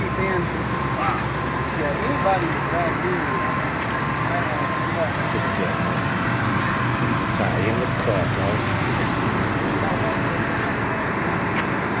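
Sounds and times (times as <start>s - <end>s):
freeway traffic roar: 0.0s - 12.0s.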